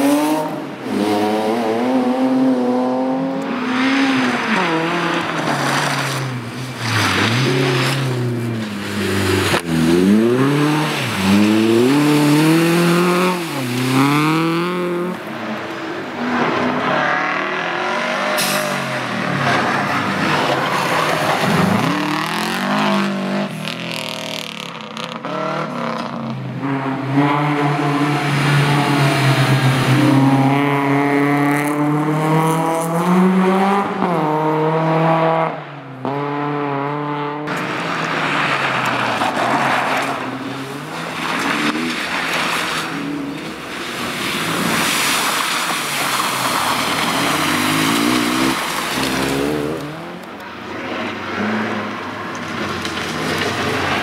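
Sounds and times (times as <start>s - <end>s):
rally cars passing at full throttle: 0.0s - 54.0s.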